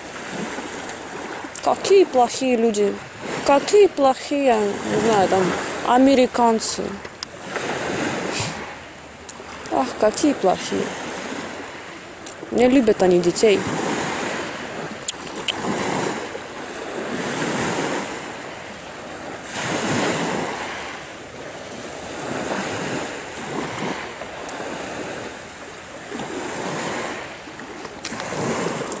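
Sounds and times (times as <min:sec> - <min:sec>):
sea waves washing onto shore: 0:00.0 - 0:29.0.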